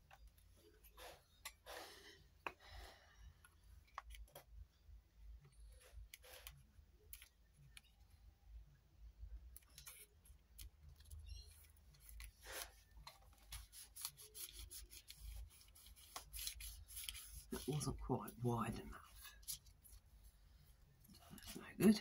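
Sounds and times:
paper rustling and rubbing: 11.6 - 18.0.

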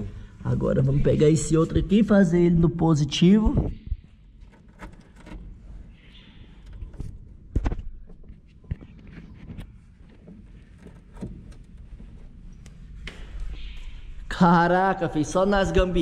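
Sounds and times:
clicks and knocks of cable handling: 3.9 - 13.6.

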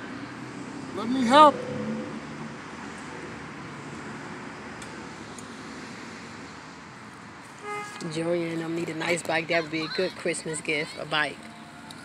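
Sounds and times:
distant road traffic rush: 0.0 - 12.0.

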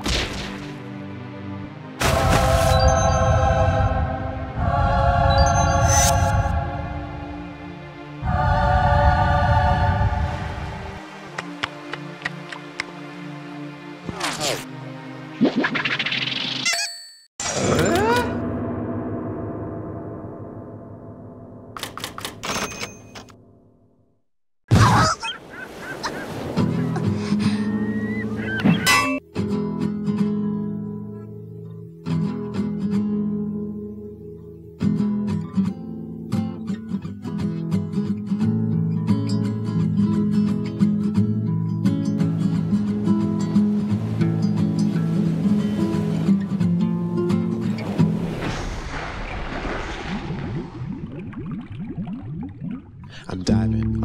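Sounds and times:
seagulls crying: 24.8 - 29.0
ocean surf: 25.3 - 28.5, 42.4 - 50.5
cartoon water splash: 48.2 - 52.9
rising bubbling gurgles: 48.4 - 53.3.

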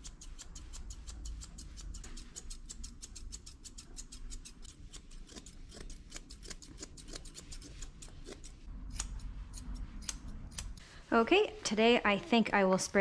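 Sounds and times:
scissors snipping fur: 0.0 - 10.8.

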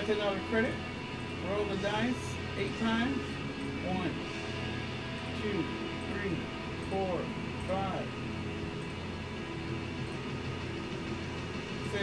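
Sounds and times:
faint background music: 0.0 - 12.0
low background hum: 0.0 - 12.0.

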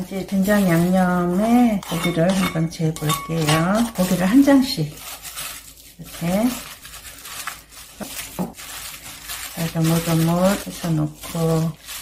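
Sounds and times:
hands kneading wet meat: 0.0 - 12.0.

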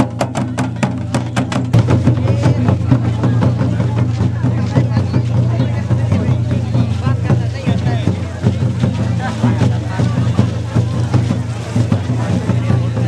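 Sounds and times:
crowd voices: 0.0 - 13.0
large kettle drums beaten: 0.0 - 13.0.

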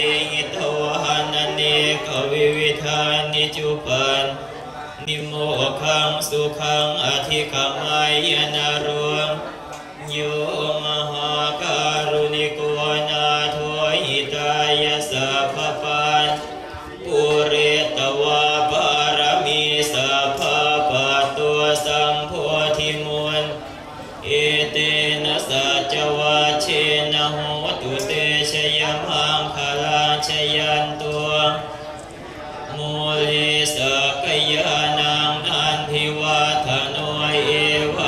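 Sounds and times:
monks chanting in unison: 0.0 - 38.0.

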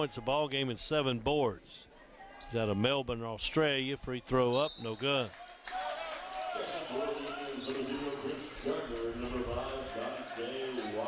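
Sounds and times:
people talking in a hall: 0.0 - 11.0.

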